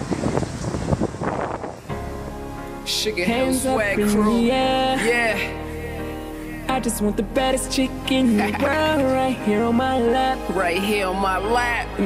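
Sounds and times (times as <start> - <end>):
wind buffeting microphone: 0.0 - 2.4.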